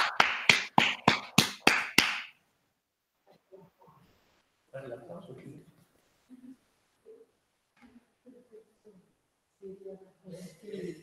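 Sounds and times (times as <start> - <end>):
hand clapping: 0.0 - 2.4.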